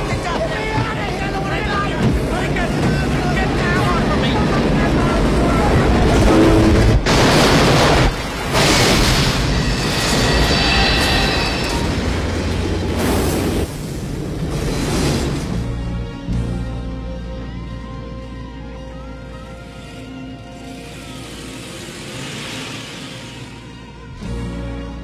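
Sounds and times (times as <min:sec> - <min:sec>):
voices: 0:00.0 - 0:07.0
grinding rumble: 0:00.0 - 0:16.5
film score music: 0:00.0 - 0:25.0
loud crash: 0:06.0 - 0:15.8
metallic screeching: 0:09.2 - 0:12.5.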